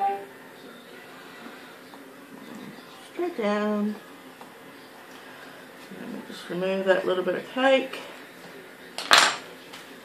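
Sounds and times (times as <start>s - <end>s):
knife clattering on table: 9.0s - 9.4s.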